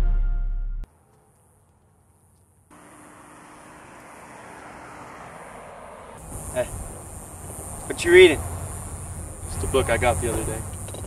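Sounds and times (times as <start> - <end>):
distant vehicle rush: 0.9 - 10.9.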